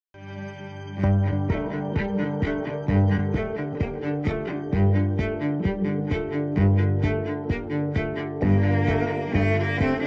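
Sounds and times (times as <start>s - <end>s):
cello music: 0.2s - 10.0s.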